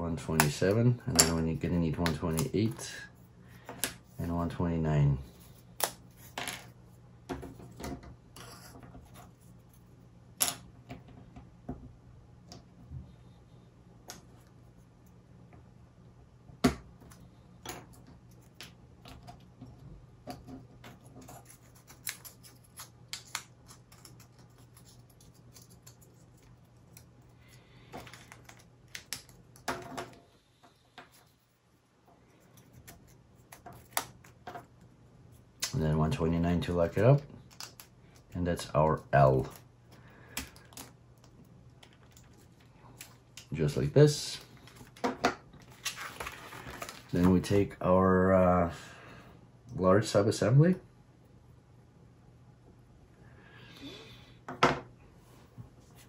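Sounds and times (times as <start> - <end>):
faint low hum: 0.0 - 56.0.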